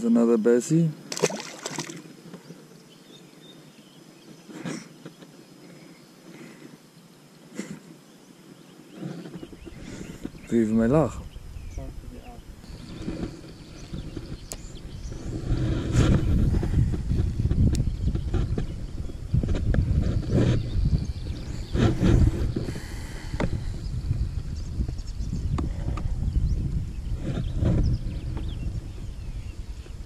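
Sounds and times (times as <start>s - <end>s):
wind buffeting microphone: 9.2s - 30.0s.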